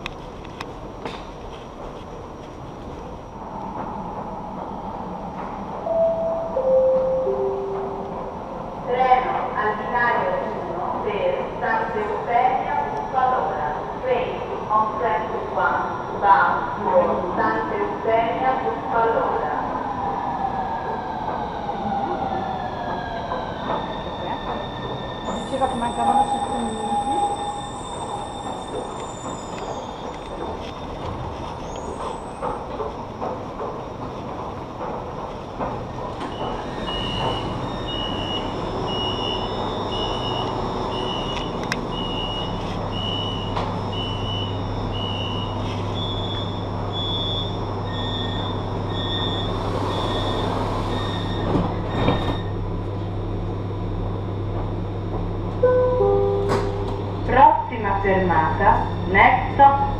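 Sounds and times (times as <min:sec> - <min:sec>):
low train hum: 0:00.0 - 0:59.9
train electric motor whine: 0:36.2 - 0:53.4
brake squeal: 0:45.1 - 0:52.6.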